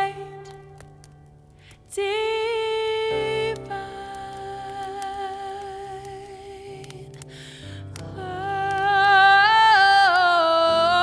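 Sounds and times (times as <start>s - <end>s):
fire crackles: 0.0s - 11.0s.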